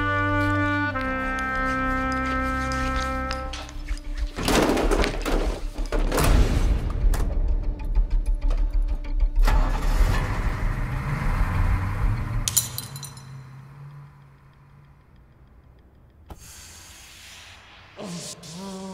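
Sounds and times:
bus engine rumbling: 9.5 - 17.1
smoke grenade hissing: 16.3 - 18.8.

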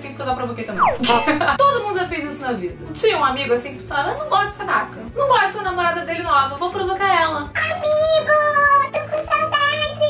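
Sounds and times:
background music: 0.7 - 9.3
high-pitched voice singing: 0.8 - 1.5.

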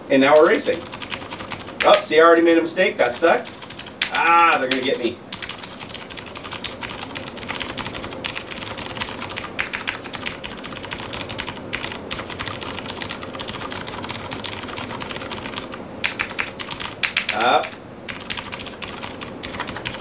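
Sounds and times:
mechanical keyboard typing: 0.3 - 2.1, 3.4 - 20.0.

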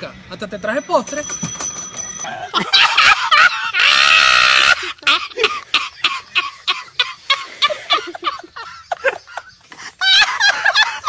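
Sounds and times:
person laughing in bursts: 2.3 - 11.0
loud drawn-out cry: 3.5 - 5.0.

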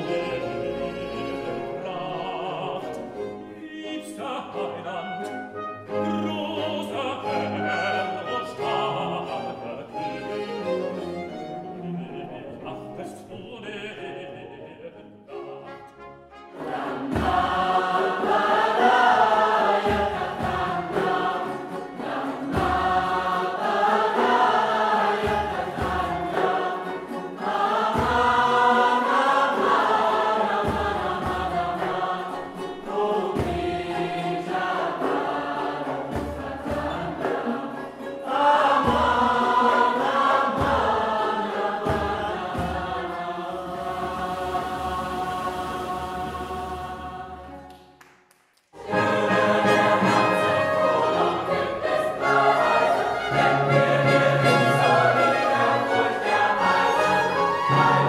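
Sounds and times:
choir singing with orchestra: 0.0 - 47.9, 48.8 - 58.0.

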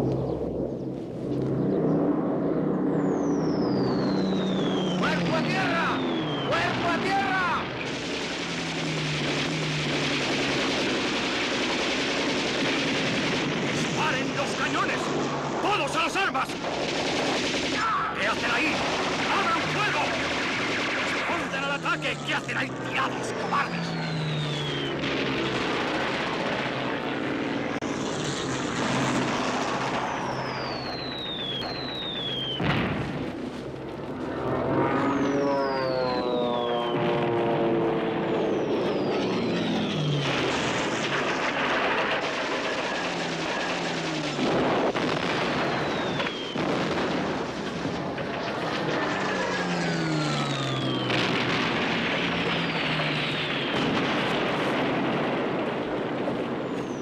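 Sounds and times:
deep falling drone: 0.0 - 6.6
engines: 0.0 - 57.0
whistles falling in pitch: 3.2 - 6.7, 23.6 - 25.0, 30.2 - 32.7
gunfire: 6.6 - 15.8, 16.4 - 27.2, 28.3 - 33.6, 39.2 - 56.5.

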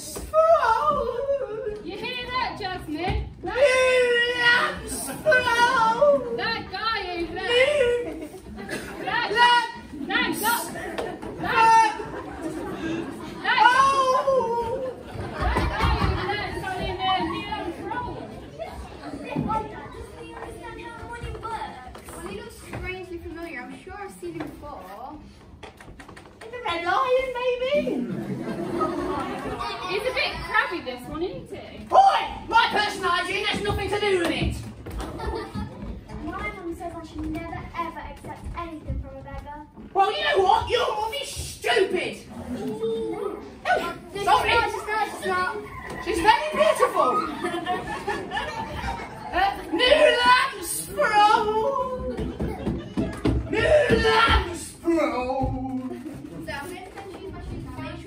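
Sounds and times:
voices talking in echoing hall: 0.0 - 58.0.

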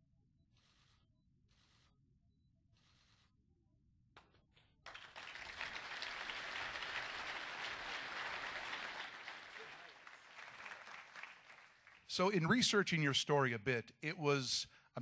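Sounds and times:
audience applauding: 4.8 - 12.5.

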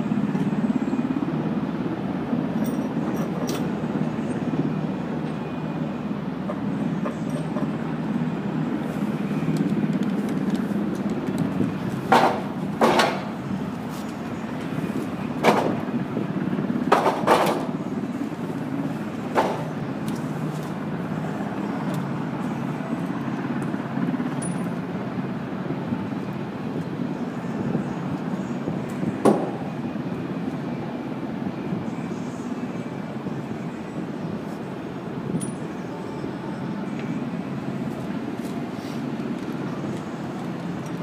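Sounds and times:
steady low rumble: 0.0 - 41.0.

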